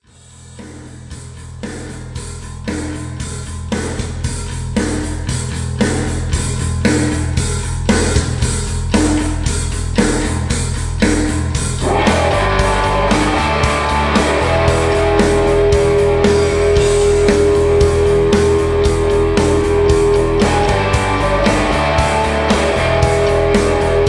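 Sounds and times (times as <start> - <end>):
hard rock music: 0.0 - 24.0
drum hits: 0.7 - 24.0
heavy electric guitar riff: 11.6 - 24.0.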